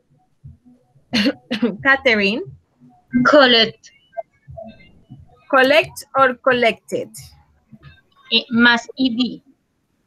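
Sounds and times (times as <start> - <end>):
person speaking: 1.2 - 2.5, 3.1 - 3.8, 5.5 - 7.3.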